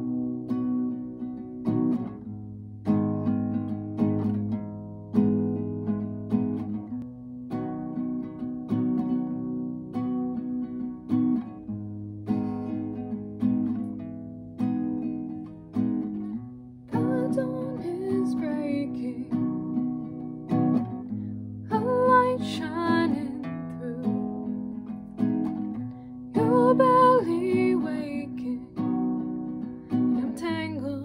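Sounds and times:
classical guitar chords: 0.0 - 31.0.

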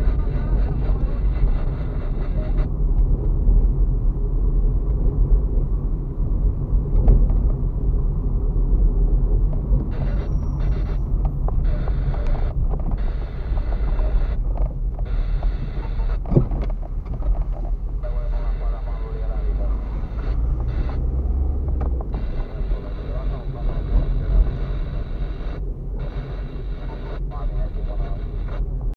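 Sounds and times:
tyres rumbling on dirt road: 0.0 - 28.9.

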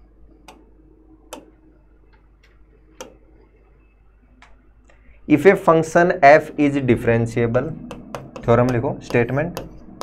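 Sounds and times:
faint low hum: 0.0 - 10.0
pen tapping on screen: 7.9 - 9.8.

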